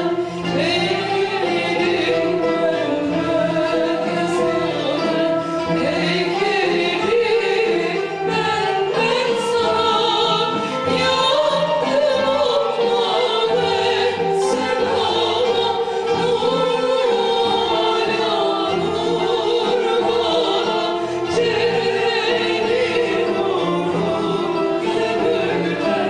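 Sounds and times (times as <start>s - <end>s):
bowed string instrument: 0.0s - 26.0s
women singing a hymn: 0.0s - 26.0s.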